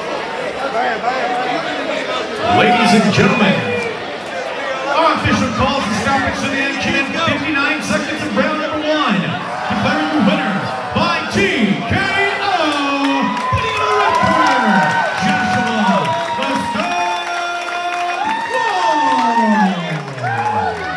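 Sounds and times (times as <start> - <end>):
crowd cheering and shouting: 0.0 - 20.9.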